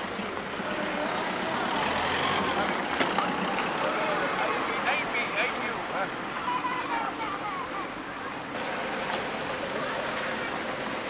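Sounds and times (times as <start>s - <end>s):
indistinct chatter: 0.0s - 11.0s
outdoor street noise: 0.0s - 11.0s.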